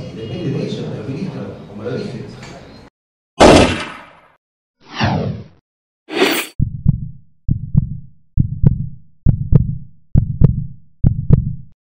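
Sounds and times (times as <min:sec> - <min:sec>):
heartbeat thumps: 0:06.6 - 0:11.8.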